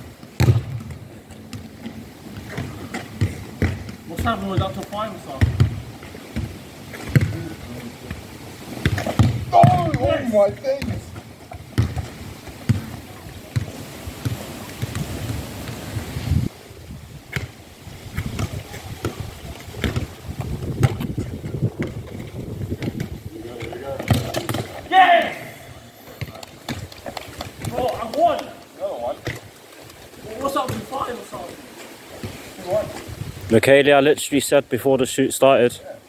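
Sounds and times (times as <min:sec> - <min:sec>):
players calling out: 0:02.3 - 0:11.2, 0:23.3 - 0:29.5
low rumbling microphone noise: 0:10.9 - 0:28.0, 0:29.1 - 0:33.8.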